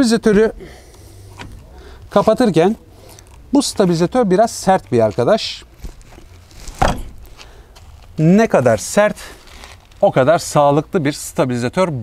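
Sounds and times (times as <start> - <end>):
short clunk: 6.7 - 7.3
coupling handle forced closed: 6.8 - 7.3.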